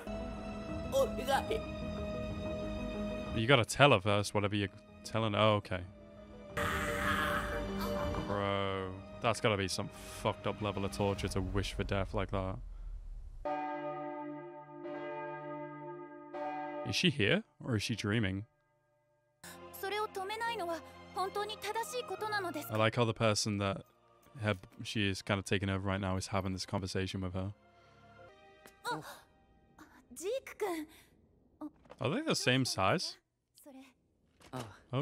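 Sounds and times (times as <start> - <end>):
soft background music: 0.0 - 12.5, 13.5 - 18.4, 19.4 - 30.8.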